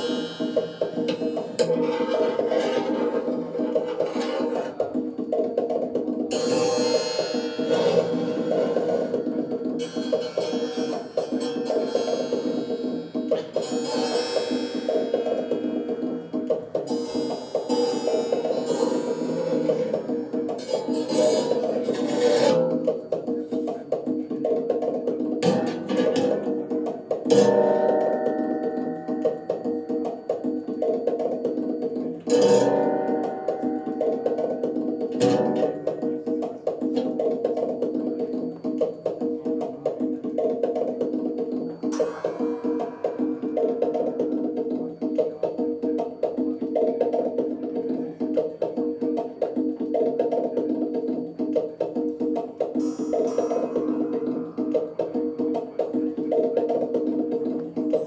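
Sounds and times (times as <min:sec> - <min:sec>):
plucked-string drone: 0:06.3 - 0:23.1
sharp struck hits: 0:41.8 - 0:45.1, 0:52.8 - 0:56.2.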